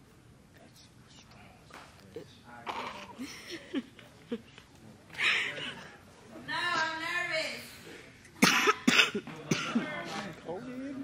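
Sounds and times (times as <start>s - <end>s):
person coughing: 8.4s - 9.9s.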